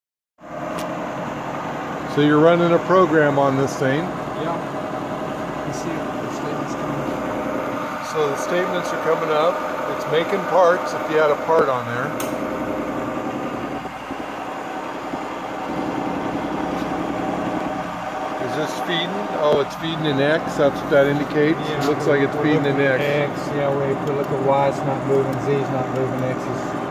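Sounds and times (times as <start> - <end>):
milling machine humming: 0.4 - 26.9.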